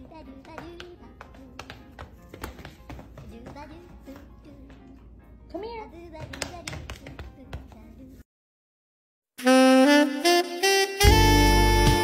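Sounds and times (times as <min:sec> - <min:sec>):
background music: 0:00.0 - 0:08.2, 0:09.4 - 0:12.0
dog paws tapping on hardwood floor: 0:00.4 - 0:05.0, 0:06.1 - 0:07.9.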